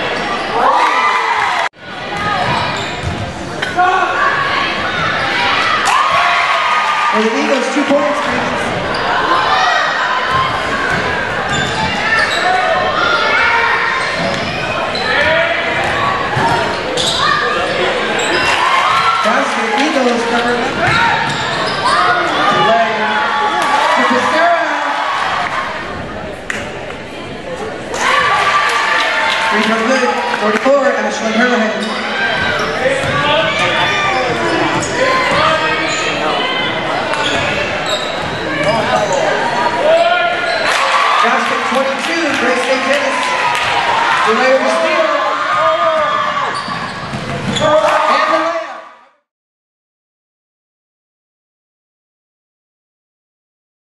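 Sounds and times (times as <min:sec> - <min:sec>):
voices shouting: 0:03.6 - 0:25.9, 0:27.9 - 0:30.5, 0:31.8 - 0:48.8.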